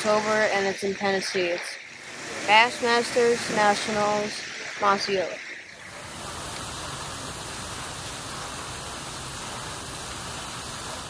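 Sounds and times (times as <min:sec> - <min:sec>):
outdoor ambience rushing noise: 0:00.0 - 0:11.0.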